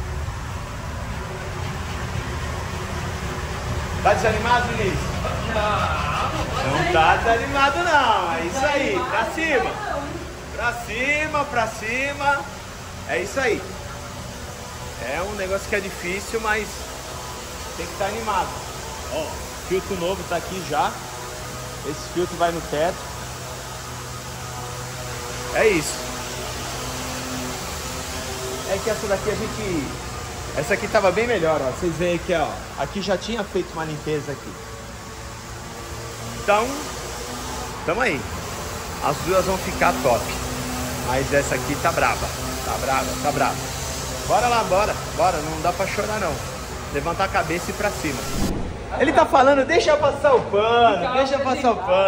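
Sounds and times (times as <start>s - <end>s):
low drone: 0.0s - 49.4s
even machine hiss: 0.0s - 50.2s.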